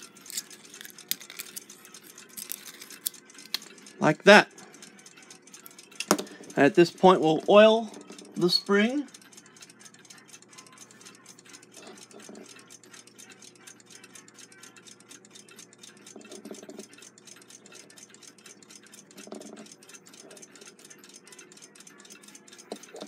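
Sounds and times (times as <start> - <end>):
mechanical clock ticking: 0.0 - 23.0.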